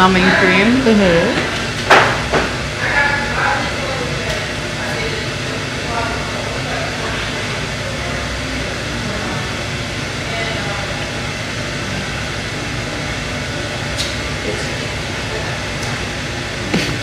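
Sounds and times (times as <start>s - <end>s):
indistinct voices murmuring: 0.0s - 1.9s, 2.6s - 17.0s
steady background hum: 0.0s - 17.0s.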